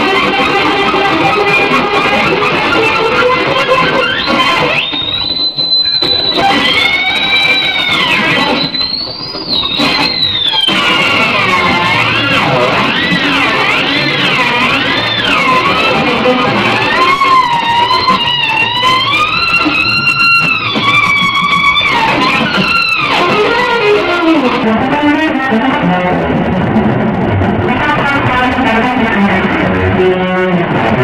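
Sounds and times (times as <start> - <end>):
electric guitar lead: 0.0 - 31.0.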